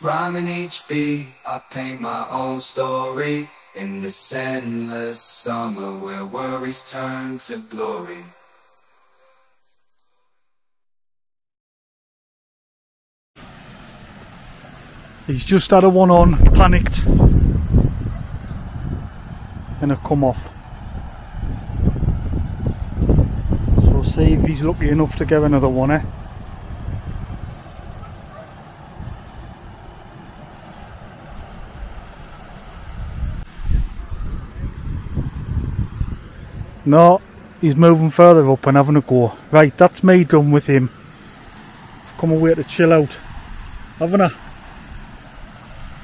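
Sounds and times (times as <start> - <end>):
rushing water over weir: 13.4 - 34.6, 36.0 - 46.0
wind buffeting microphone: 16.2 - 37.8, 41.9 - 46.0.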